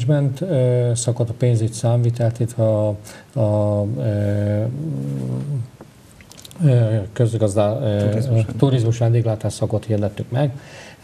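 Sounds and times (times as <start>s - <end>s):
man talking: 0.0s - 5.7s, 6.5s - 10.6s.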